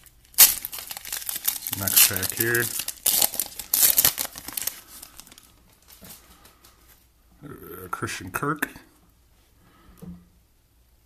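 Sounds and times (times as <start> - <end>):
foil wrapper tearing and crinkling: 0.0 - 6.0
cards rustling: 0.3 - 6.9.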